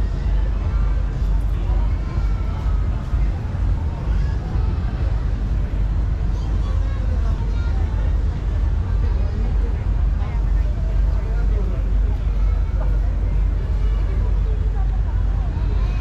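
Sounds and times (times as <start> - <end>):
indistinct voices talking: 0.0 - 16.0
low rumble of traffic: 0.0 - 16.0.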